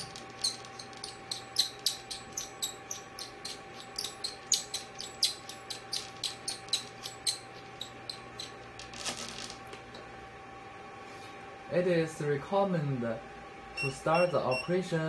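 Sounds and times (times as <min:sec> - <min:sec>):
rapid irregular clicking: 0:00.0 - 0:09.5
steady machine hum: 0:00.0 - 0:15.0.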